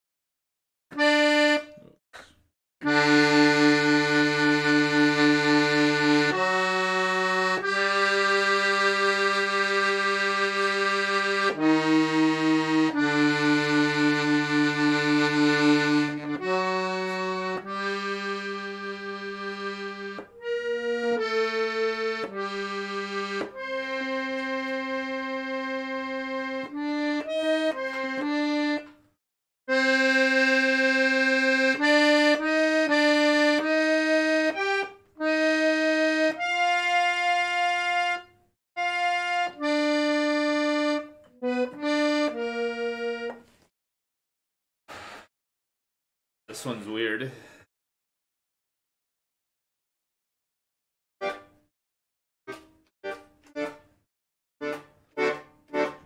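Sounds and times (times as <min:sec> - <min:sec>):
piano accordion playing chords: 0:00.9 - 0:01.8, 0:02.8 - 0:43.6, 0:51.2 - 0:51.7, 0:52.5 - 0:56.0.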